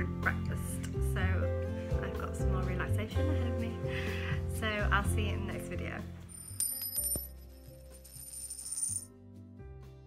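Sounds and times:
background music: 0:00.0 - 0:10.0
high jingling shimmer: 0:06.3 - 0:09.1.

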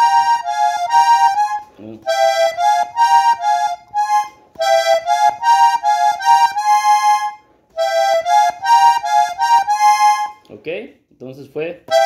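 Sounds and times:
accordion playing slow melody: 0:00.0 - 0:10.5.

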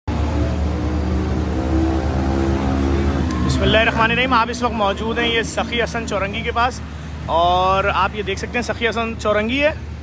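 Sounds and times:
engine running steadily: 0:00.1 - 0:10.0.

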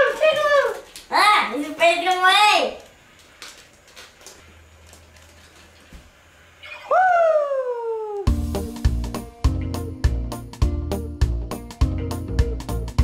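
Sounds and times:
child's excited cry: 0:06.6 - 0:08.3.

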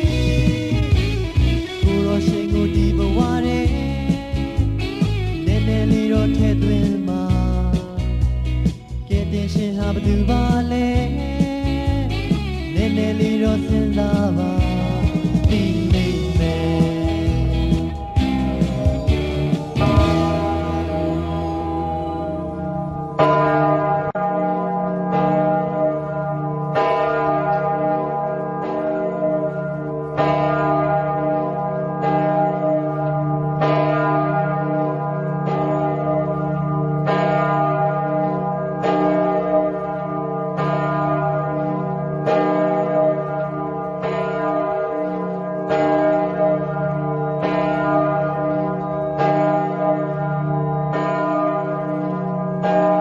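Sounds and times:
bell ringing: 0:00.0 - 0:53.0.

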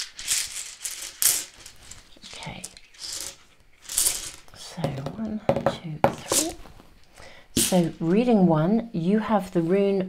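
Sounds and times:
tiles rattling in a cloth pouch: 0:00.0 - 0:05.4, 0:06.1 - 0:06.7, 0:07.6 - 0:08.2.

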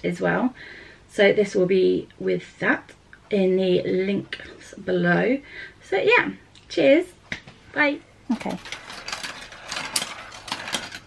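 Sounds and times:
marbles rattling along plastic track: 0:08.4 - 0:11.0.

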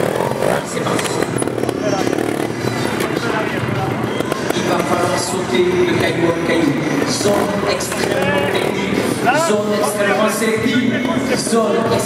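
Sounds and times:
motorcycle engine running: 0:00.0 - 0:12.0
background music: 0:02.2 - 0:12.0.

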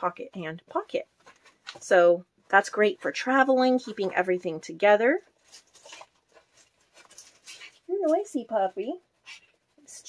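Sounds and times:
plastic wrapper crinkling: 0:05.3 - 0:08.9.

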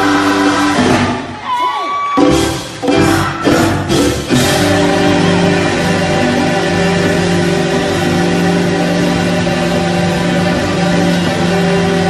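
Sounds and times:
live church band music: 0:00.0 - 0:12.0
keyboard sustained chords: 0:03.9 - 0:12.0.

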